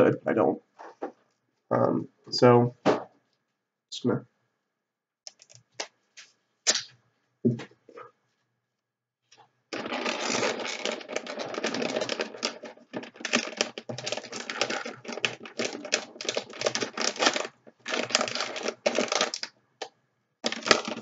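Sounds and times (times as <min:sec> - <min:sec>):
tape pulled off roll crackling: 0:06.6 - 0:07.0, 0:09.8 - 0:19.5
plastic bag crinkling: 0:09.7 - 0:19.5, 0:20.4 - 0:21.0.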